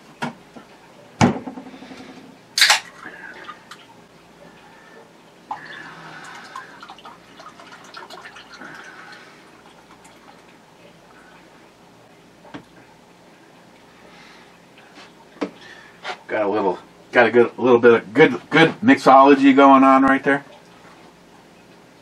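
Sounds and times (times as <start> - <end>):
object knocked down on desk: 1.2 - 1.7.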